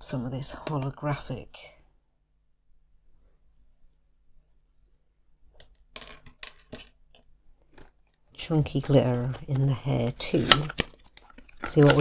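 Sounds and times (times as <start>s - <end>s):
clicks and knocks on a tabletop: 5.6s - 7.9s.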